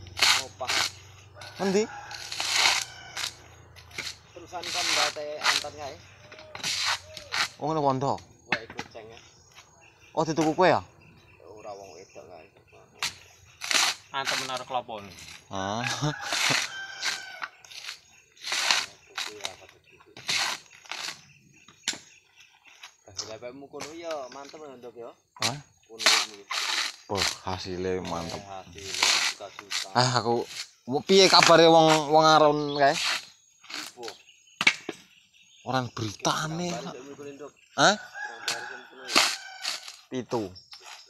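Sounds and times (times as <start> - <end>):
coconut husk tearing: 0.0 - 7.7, 13.0 - 22.0, 25.4 - 34.2, 38.0 - 40.1
rooster crowing: 1.2 - 3.9, 15.5 - 17.8, 37.9 - 40.1.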